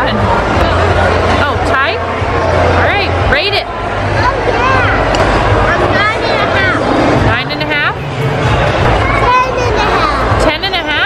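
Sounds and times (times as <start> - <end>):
background babble: 0.0 - 11.0
children's voices: 4.1 - 7.2, 8.9 - 10.4.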